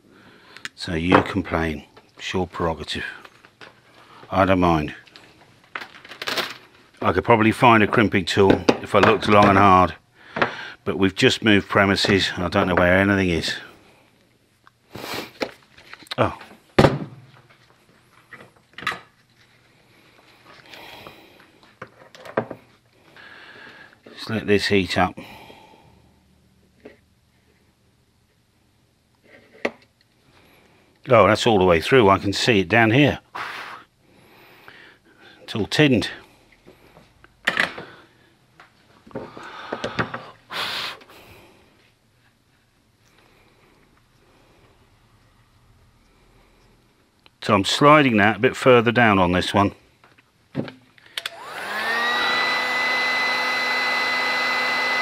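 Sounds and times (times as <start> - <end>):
man breathing close up: 0.0 - 0.7, 10.1 - 10.8, 19.9 - 21.6, 23.0 - 24.0, 25.2 - 26.3, 33.4 - 35.4, 39.2 - 41.9
loud hissing breath: 33.3 - 35.4, 39.3 - 41.8.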